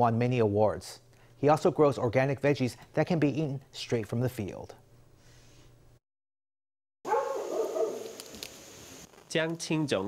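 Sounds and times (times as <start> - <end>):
outdoor ambience: 7.1 - 10.0.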